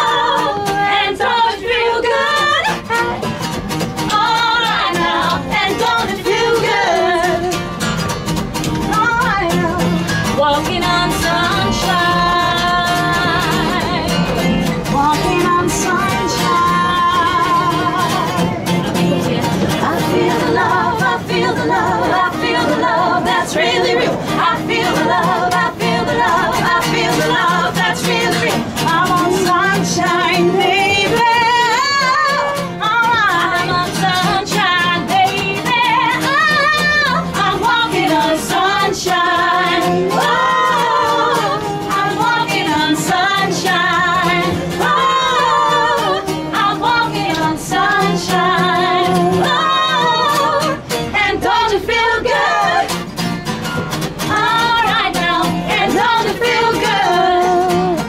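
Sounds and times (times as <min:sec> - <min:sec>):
women singing with vibrato: 0:00.0 - 0:07.9, 0:08.6 - 0:53.1, 0:54.2 - 0:58.0
acoustic guitar: 0:00.0 - 0:58.0.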